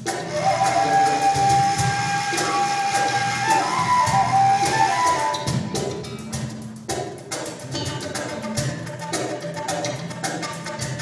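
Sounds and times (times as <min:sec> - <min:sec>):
oud holding long high note: 0:00.3 - 0:05.5.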